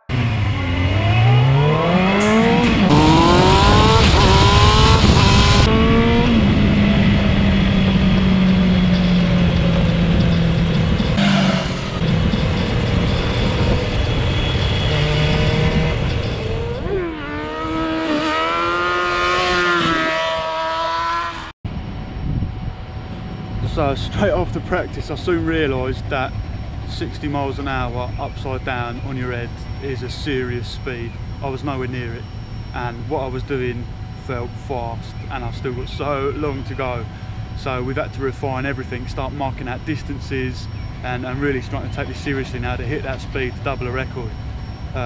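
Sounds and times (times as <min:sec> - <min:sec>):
motorcycle engine revving: 0:00.0 - 0:21.6
wind rush over microphone: 0:02.4 - 0:11.2, 0:12.0 - 0:18.0, 0:21.7 - 0:25.5.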